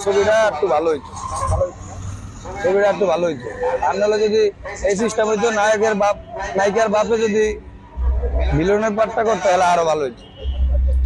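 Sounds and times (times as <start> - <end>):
man speaking: 0.0 - 1.8, 2.5 - 7.6, 8.2 - 11.0.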